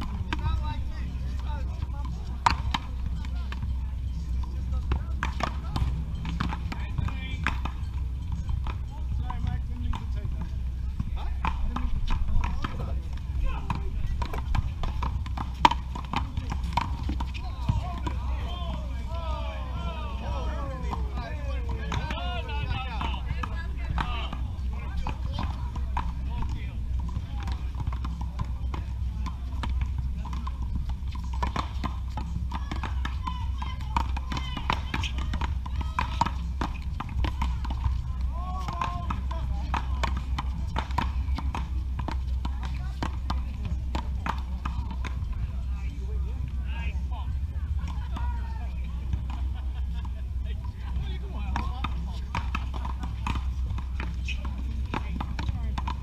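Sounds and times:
footsteps on court: 4.3 - 56.0
paddles striking rubber ball: 4.8 - 45.4, 50.8 - 56.0
ball hitting concrete wall: 31.2 - 45.2.

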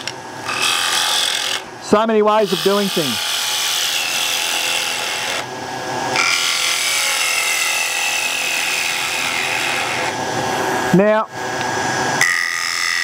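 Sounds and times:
lathe motor hum: 0.0 - 13.0.

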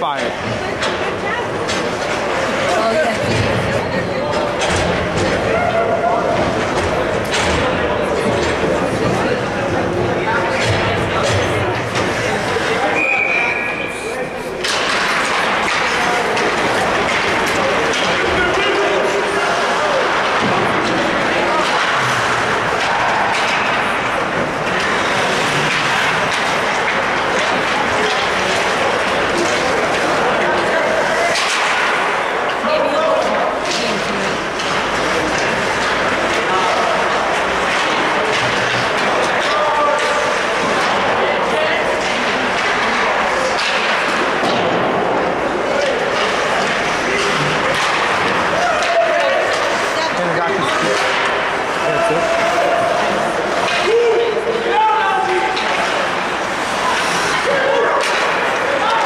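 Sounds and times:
echoing shouting and chatter: 0.0 - 59.0
hockey sticks and puck clacking: 0.0 - 59.0.

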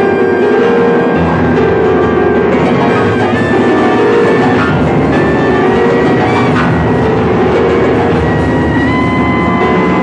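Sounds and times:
electric keyboard: 0.0 - 10.0.

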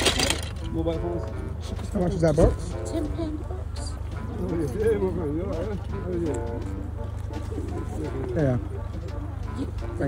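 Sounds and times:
people talking: 0.1 - 10.0.

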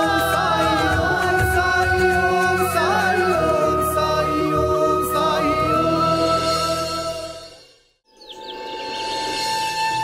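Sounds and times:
bird chirps: 8.0 - 9.5.

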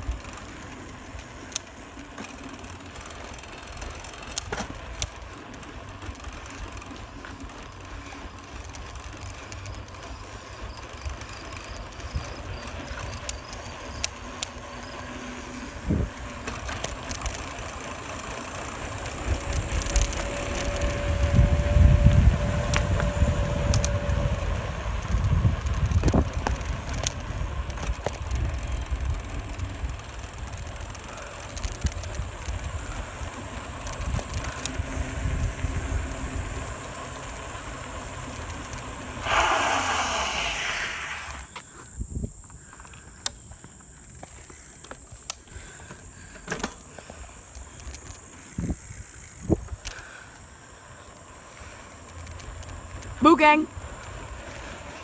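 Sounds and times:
bicycle clicks and rattles: 0.0 - 55.0
tyre and wind noise: 0.0 - 55.0.

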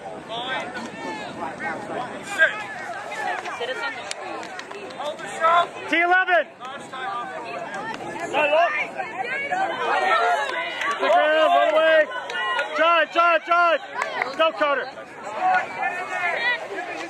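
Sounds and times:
background chatter: 0.0 - 17.0
people shouting: 7.7 - 17.0.

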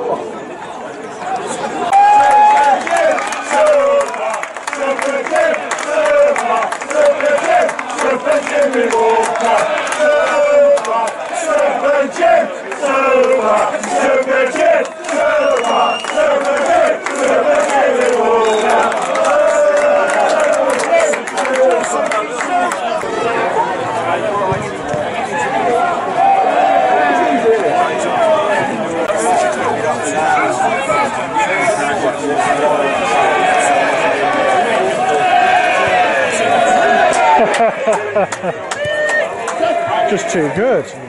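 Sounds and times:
crowd shouting: 1.2 - 40.8.

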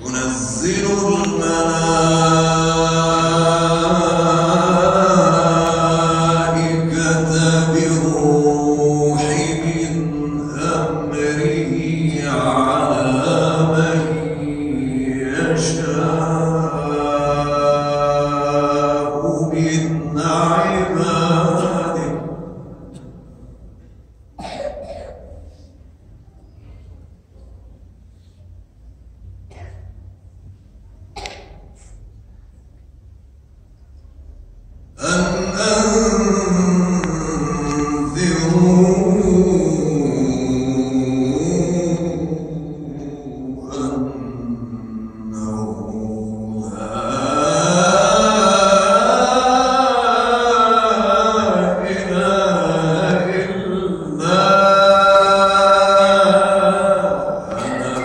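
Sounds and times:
man chanting into a microphone: 0.0 - 23.6, 34.9 - 58.0.

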